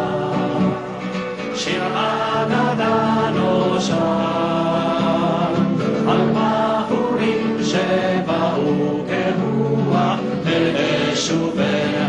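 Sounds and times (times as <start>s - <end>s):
acoustic guitars: 0.0s - 12.0s
two men singing: 0.0s - 12.0s.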